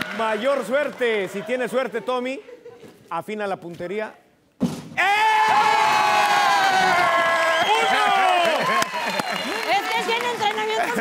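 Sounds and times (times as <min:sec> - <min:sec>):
long high held shout: 0:05.0 - 0:09.4
excited yelling and cheering: 0:05.0 - 0:11.0.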